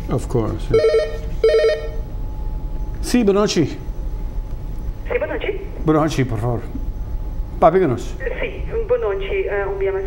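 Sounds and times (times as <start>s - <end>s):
telephone ringing: 0.7s - 2.0s.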